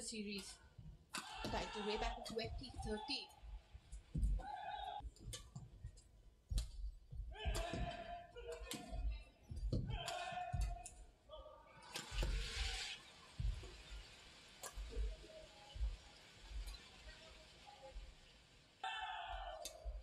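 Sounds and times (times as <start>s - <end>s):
rackets striking shuttlecock: 0.4s - 3.1s, 3.9s - 11.0s, 11.8s - 12.8s
voices rising: 1.2s - 3.4s, 18.8s - 19.8s
feet thudding on court: 3.8s - 11.0s.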